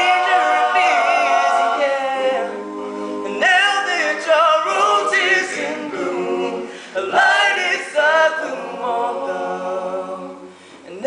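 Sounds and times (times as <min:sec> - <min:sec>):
men singing a cappella: 0:00.0 - 0:10.6.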